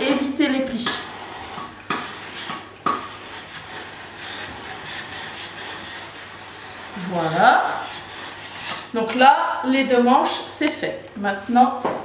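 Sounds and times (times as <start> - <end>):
woman's voice: 0.0 - 1.0, 7.0 - 7.9, 9.0 - 12.0
steam iron hissing: 0.8 - 8.9.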